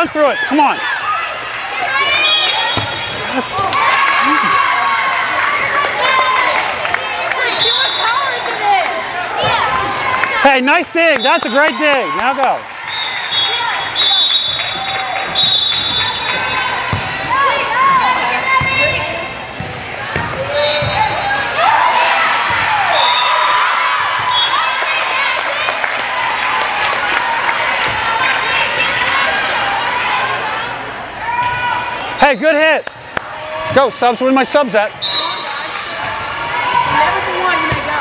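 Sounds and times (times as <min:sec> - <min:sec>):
voices calling and cheering: 0:00.0 - 0:38.0.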